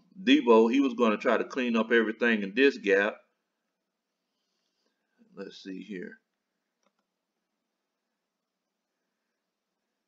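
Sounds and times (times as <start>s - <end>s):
computer mouse clicks: 6.8s - 7.1s.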